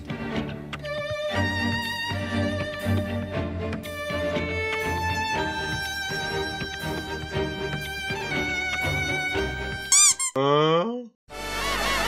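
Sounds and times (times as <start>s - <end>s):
violin background music: 0.0s - 9.9s
high squeaky chirps: 9.8s - 10.4s.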